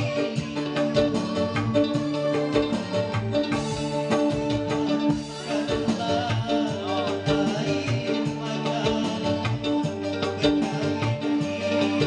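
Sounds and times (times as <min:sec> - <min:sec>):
electric guitar: 0:00.0 - 0:12.0
hand-drum beat: 0:00.0 - 0:12.0
keyboard: 0:00.0 - 0:12.0.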